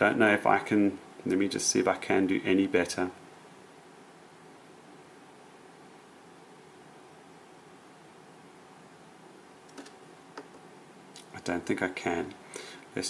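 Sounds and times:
faint room hiss: 0.0s - 13.0s.

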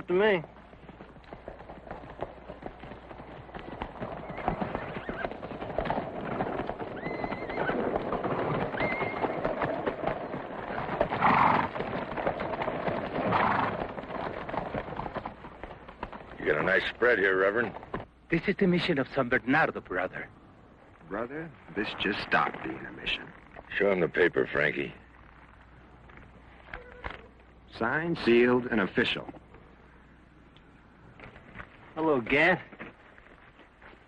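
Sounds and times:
horses hooves clattering: 0.0s - 30.2s
horses whinnying: 3.6s - 15.3s.

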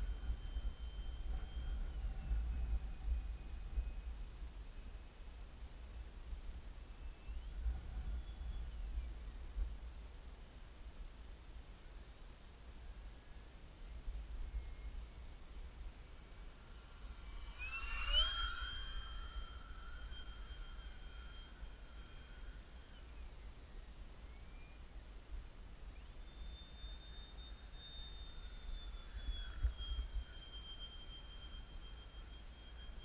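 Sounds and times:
electric ducted fan whine: 0.0s - 33.0s.

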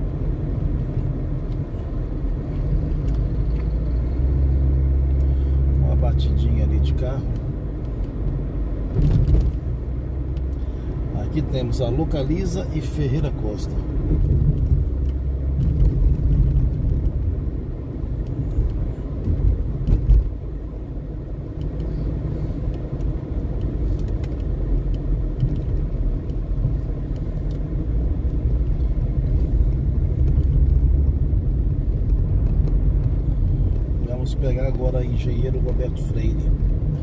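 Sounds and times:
car engine and road noise: 0.0s - 37.0s.

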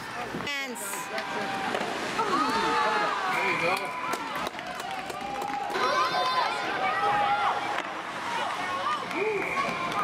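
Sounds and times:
spectators shouting and cheering: 0.0s - 10.0s.

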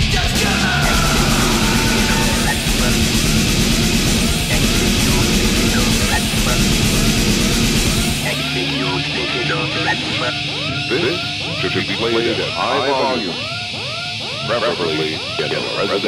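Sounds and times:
distorted rock band playing: 0.0s - 16.0s.

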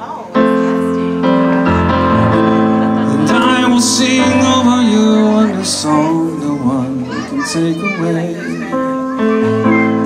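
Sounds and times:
piano chords: 0.0s - 10.0s
man singing into a microphone: 3.0s - 10.0s.

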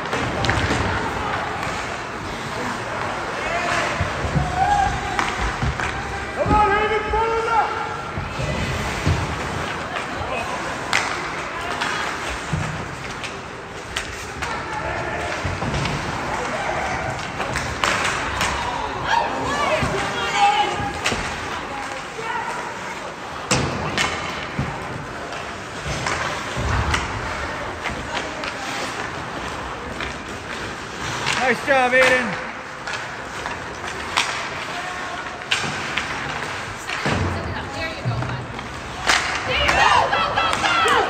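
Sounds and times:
crowd noise: 0.0s - 41.0s
spectators' voices: 0.0s - 41.0s
sharp cracks of hockey sticks: 39.0s - 41.0s
spectator shouting: 39.5s - 41.0s.

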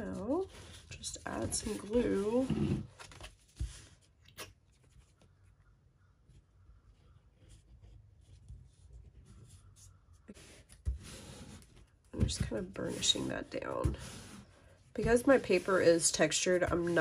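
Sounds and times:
hands rubbing paper: 7.4s - 17.0s.

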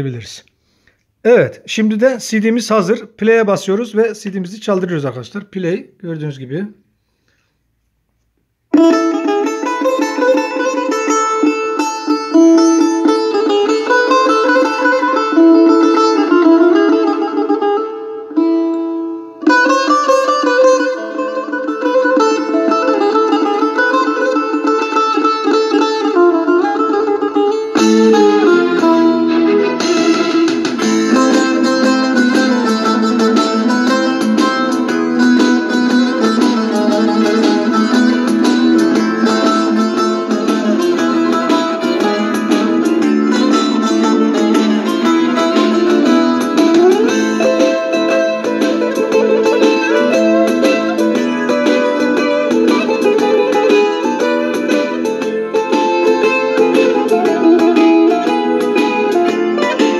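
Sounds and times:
plucked string music on small speakers: 6.5s - 59.9s.

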